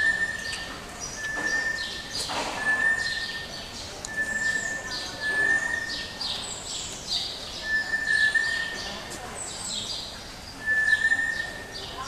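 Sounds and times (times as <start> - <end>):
high piping bird tone: 0.0 - 9.0, 9.7 - 12.0
birds chirping: 0.0 - 12.0.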